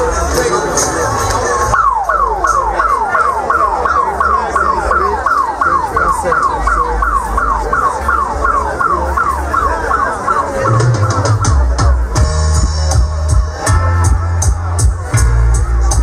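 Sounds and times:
deep bassline: 0:00.0 - 0:16.0
dub siren falling sweeps: 0:01.7 - 0:12.0.

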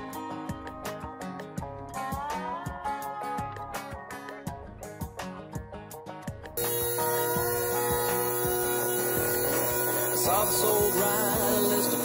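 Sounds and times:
background music: 0:00.0 - 0:12.0
air sander hissing and whining: 0:06.6 - 0:12.0.

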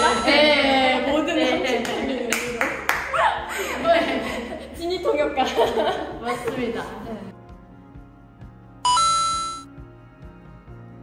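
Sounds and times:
woman laughing: 0:00.0 - 0:06.5
hand claps: 0:01.7 - 0:03.2.

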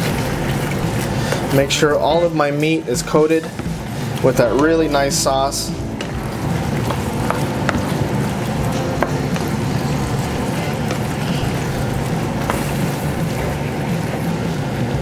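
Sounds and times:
sauce sizzling in a pan: 0:00.0 - 0:15.0
wooden spoon tapping a pan: 0:06.0 - 0:08.2, 0:08.9 - 0:09.6, 0:12.4 - 0:12.7.

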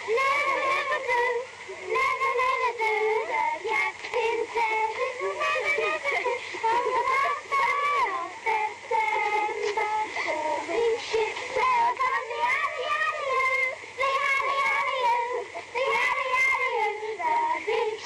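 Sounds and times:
song with high singing voices: 0:00.0 - 0:18.0.

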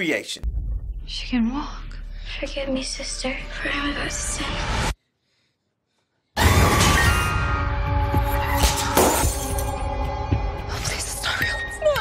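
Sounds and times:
object shattering on hard floor: 0:08.6 - 0:09.8
shards scattering: 0:08.6 - 0:09.8.

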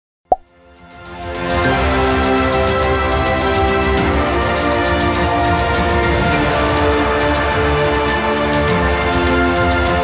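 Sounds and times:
background music: 0:00.6 - 0:10.0.

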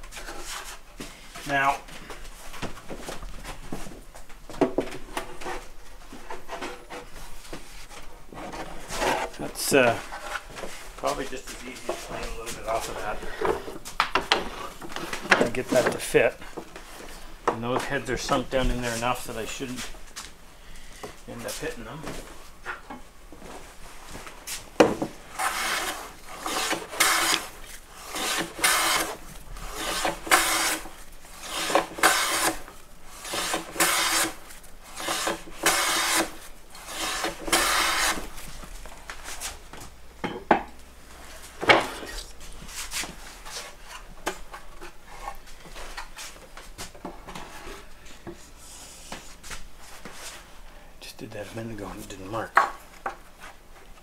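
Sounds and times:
hand plane shaving wood: 0:25.3 - 0:38.3.

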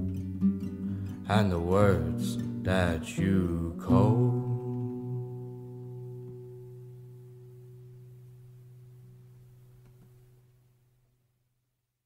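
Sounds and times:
guitar chord ringing out: 0:03.8 - 0:09.2.

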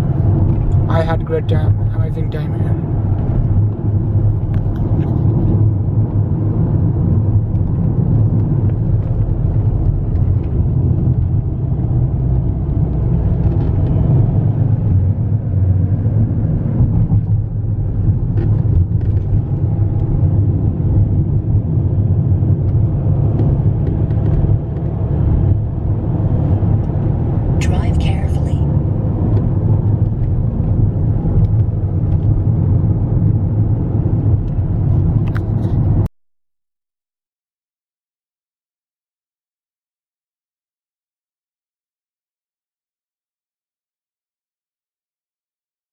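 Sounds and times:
car engine and tyre rumble: 0:00.0 - 0:36.1.

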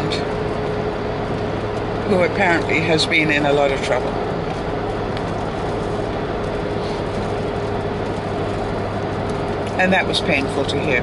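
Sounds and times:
low hum: 0:00.0 - 0:11.0
road and engine noise in car: 0:00.0 - 0:11.0.

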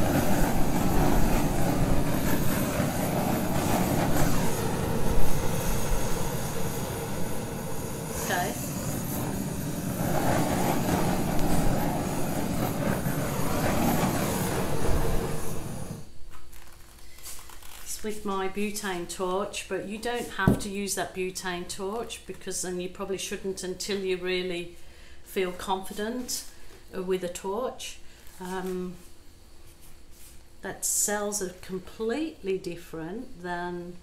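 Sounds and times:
butane torch flame: 0:00.0 - 0:21.2.

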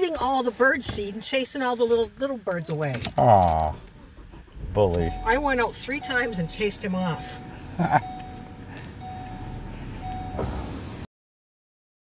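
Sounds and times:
car engine and road rumble: 0:00.0 - 0:11.1
faint steady tone: 0:04.6 - 0:10.8.

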